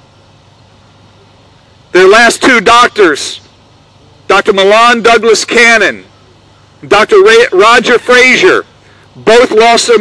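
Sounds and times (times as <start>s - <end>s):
outdoor background noise with hum: 0.0s - 10.0s
man speaking: 1.9s - 3.5s, 4.3s - 6.1s, 6.8s - 10.0s.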